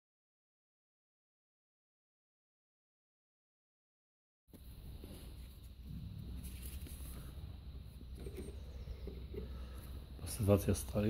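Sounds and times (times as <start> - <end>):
low steady hum: 4.5 - 11.0.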